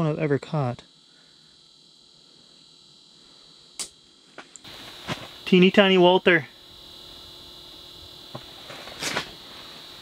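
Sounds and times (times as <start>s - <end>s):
faint steady hiss: 0.0s - 10.0s
high-pitched hum: 0.0s - 10.0s.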